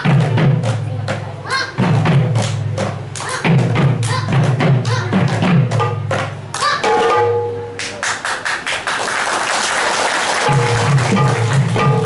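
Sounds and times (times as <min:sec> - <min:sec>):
heavy low drum strokes: 0:00.0 - 0:06.5, 0:10.5 - 0:12.0
barrel drums played fast: 0:00.0 - 0:07.2, 0:10.5 - 0:12.0.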